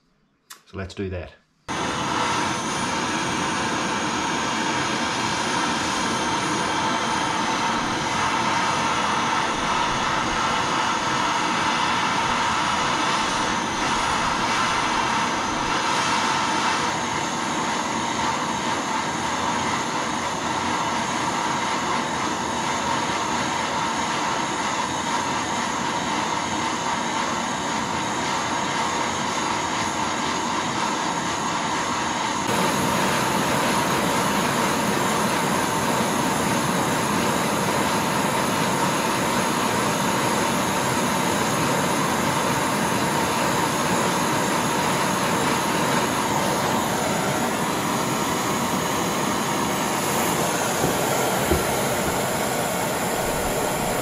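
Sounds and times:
blow torch flame roaring: 1.7s - 54.0s.

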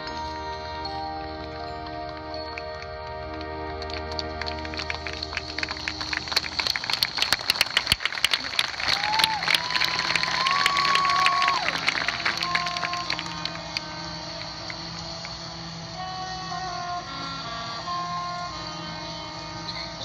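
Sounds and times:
crowd applause: 1.1s - 16.0s.

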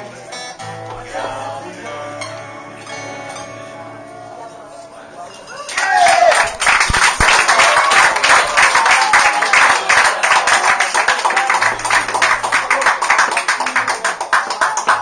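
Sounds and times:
murmur of voices: 0.0s - 15.0s
audience applauding: 5.6s - 15.0s.

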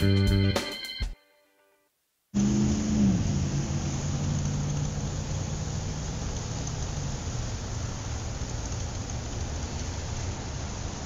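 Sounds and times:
car engine running: 2.4s - 10.2s
road noise: 2.4s - 11.0s.

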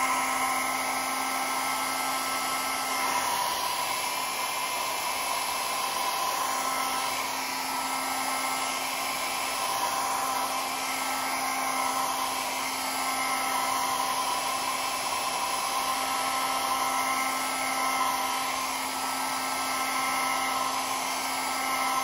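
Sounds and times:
hair dryer running: 0.0s - 22.0s.

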